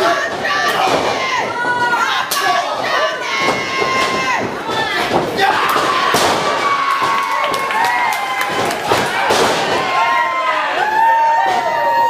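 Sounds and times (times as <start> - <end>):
spectators shouting: 0.0 - 12.0.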